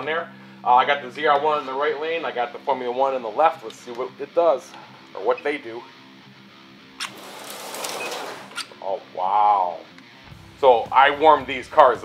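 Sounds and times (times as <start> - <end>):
background music: 0.0 - 12.0
slot car motors whirring: 7.0 - 8.6.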